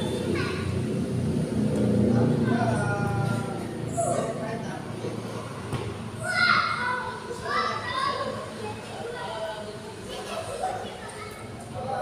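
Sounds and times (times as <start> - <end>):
children shouting: 0.0 - 0.8, 6.2 - 12.0.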